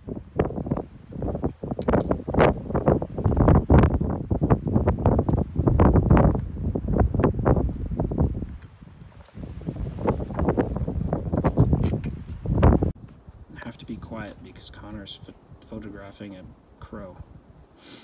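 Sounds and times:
footsteps crunching in snow: 0:02.3 - 0:14.9.

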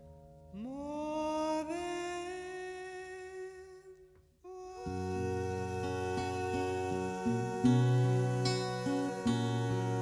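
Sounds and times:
voice holding long note: 0:04.5 - 0:10.0.

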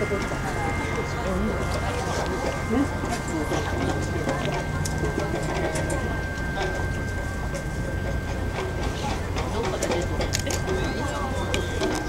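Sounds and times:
faint distant voices: 0:00.0 - 0:12.0
steady low hum: 0:00.0 - 0:12.0
thin high tone: 0:00.0 - 0:12.0.

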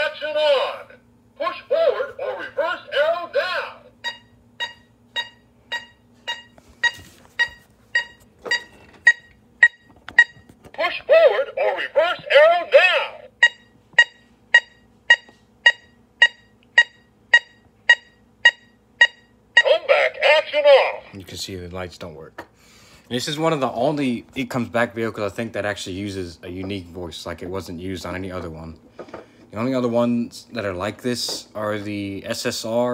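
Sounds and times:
short regular beeps: 0:04.0 - 0:10.5, 0:13.4 - 0:20.1.

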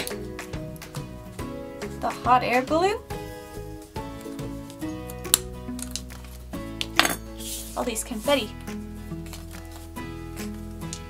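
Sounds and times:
background music: 0:00.0 - 0:11.0
metal punch clinking on table: 0:07.0 - 0:07.2
brushing rustle: 0:07.4 - 0:08.5.

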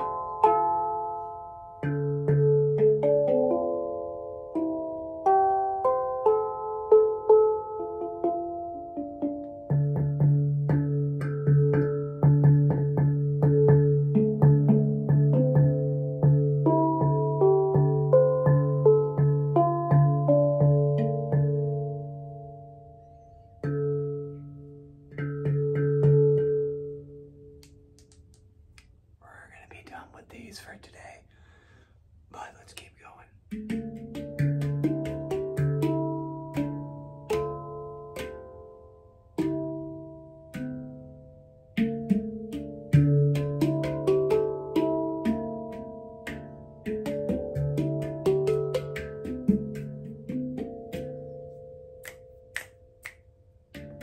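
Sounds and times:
handpan notes ringing: 0:00.0 - 0:27.4, 0:33.5 - 0:52.6, 0:53.7 - 0:54.0
finger snaps: 0:27.6 - 0:29.0, 0:52.0 - 0:53.4.

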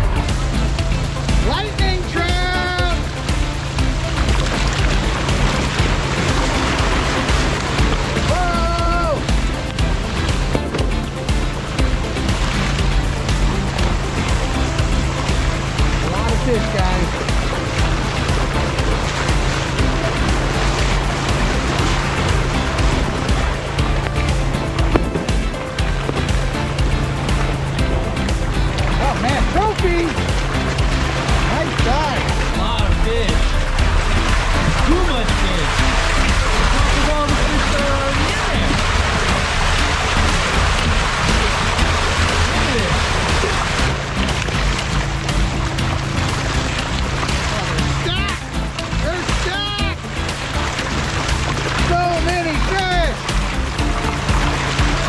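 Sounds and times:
background music: 0:00.0 - 0:55.0
water and fish pouring down a chute: 0:28.6 - 0:55.0.

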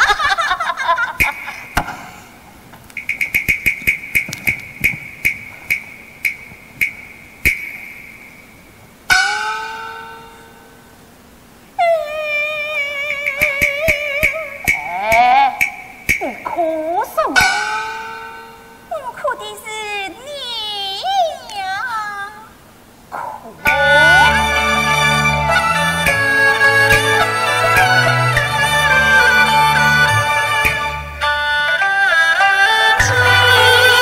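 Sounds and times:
sharp ringing percussion strikes: 0:03.0 - 0:10.7
long wavering pitched tones: 0:03.0 - 0:11.0, 0:11.8 - 0:19.0, 0:23.6 - 0:34.0.

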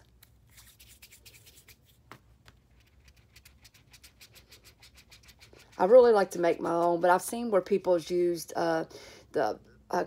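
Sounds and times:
palm rubbing clay on mat: 0:00.2 - 0:07.0.

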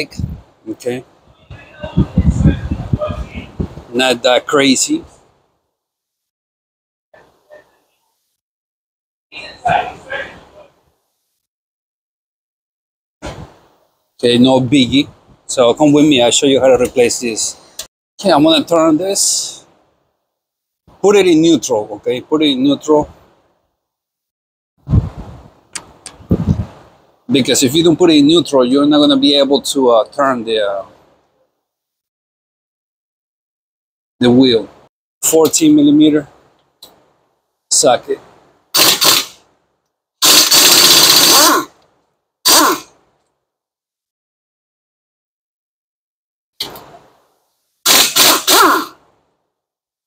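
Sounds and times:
pneumatic impact wrench bursts: 0:38.8 - 0:39.4, 0:40.2 - 0:41.7, 0:42.5 - 0:42.9, 0:47.8 - 0:49.0.

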